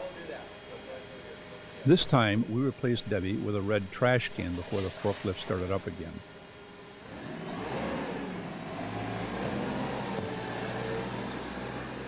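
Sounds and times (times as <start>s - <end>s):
forklift engine running: 7.0s - 12.0s.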